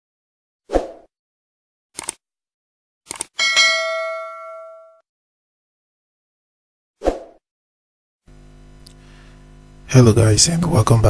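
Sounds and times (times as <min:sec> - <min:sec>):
notification bell ding: 0:03.4 - 0:05.0.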